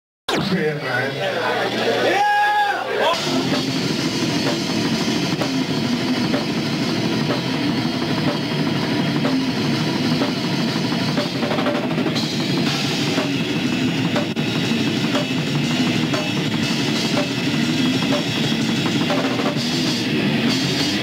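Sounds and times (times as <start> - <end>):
distorted guitar: 0.3 - 2.2, 3.0 - 21.0
death metal band playing: 1.4 - 21.0
rapid drumming: 3.1 - 21.0.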